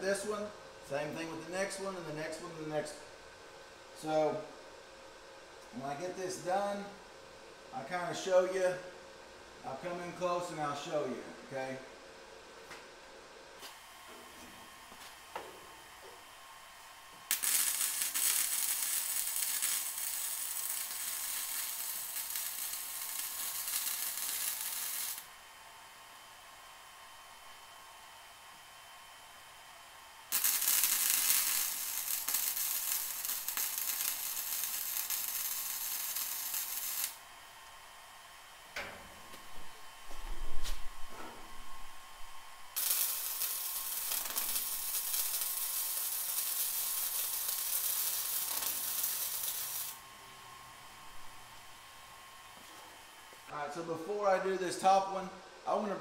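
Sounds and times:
wire welder arc noise: 13.6s - 25.5s, 30.1s - 39.9s, 42.1s - 50.2s.

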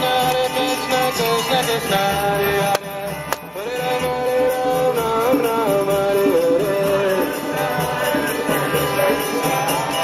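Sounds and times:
chant-like singing voices: 0.0s - 10.0s.

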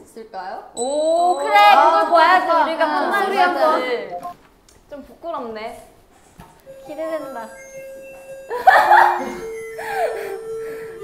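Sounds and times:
school bell chime: 0.8s - 2.8s, 6.7s - 11.0s.

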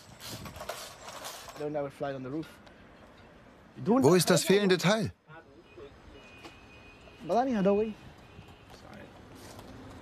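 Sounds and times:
man speaking: 3.8s - 5.8s.

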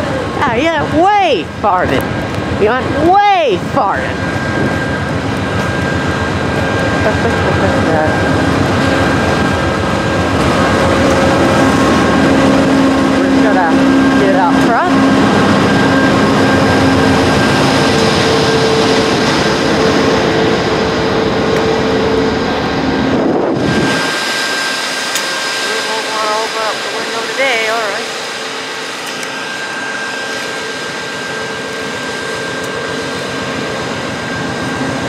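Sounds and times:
diesel locomotive engine drone: 0.0s - 35.0s
high engine whine: 0.0s - 35.0s.

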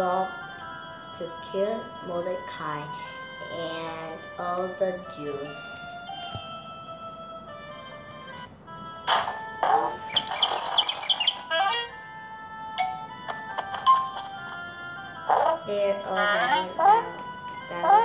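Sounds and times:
app background music: 0.0s - 18.0s.

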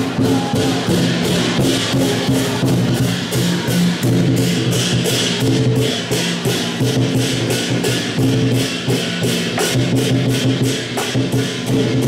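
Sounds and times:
big drum beating: 0.0s - 12.0s
cymbals clashing: 0.0s - 12.0s.

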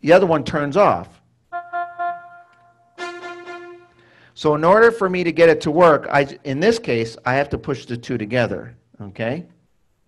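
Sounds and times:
electronic organ held note: 1.5s - 4.3s.

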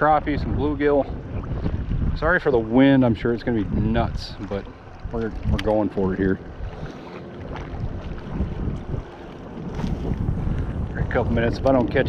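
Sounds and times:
choppy lake water: 0.0s - 12.0s
wind buffeting microphone: 0.0s - 12.0s.

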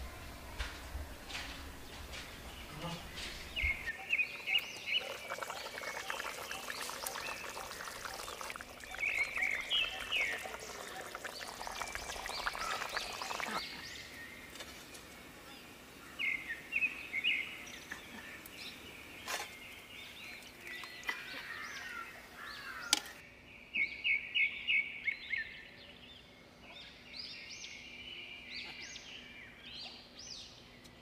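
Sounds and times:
birds chirping: 0.0s - 24.2s.

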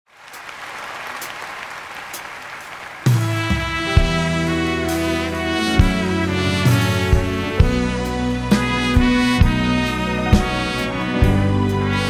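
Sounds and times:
audience applauding: 0.1s - 4.6s.

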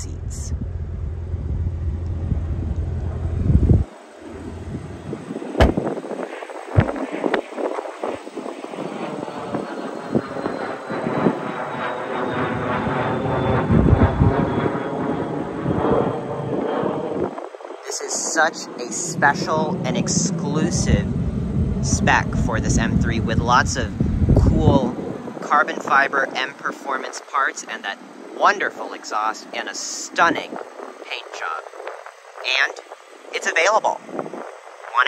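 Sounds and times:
airplane passing overhead: 0.0s - 35.0s
wind rumbling on microphone: 0.0s - 35.0s
sharp knocks: 5.6s - 5.9s.

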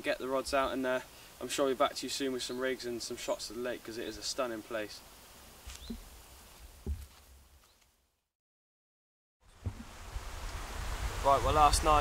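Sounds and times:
soft knocks: 6.8s - 7.2s, 9.6s - 9.9s.

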